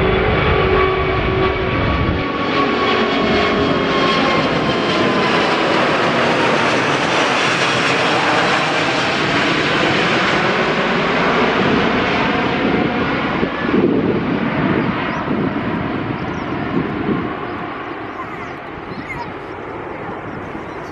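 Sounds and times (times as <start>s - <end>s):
jet engines rushing overhead: 0.0s - 20.9s
low jet rumble: 0.0s - 20.9s.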